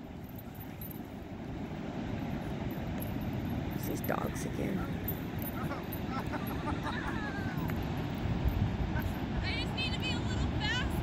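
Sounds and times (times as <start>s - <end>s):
ocean surf: 0.0s - 11.0s
wind on microphone: 6.5s - 11.0s.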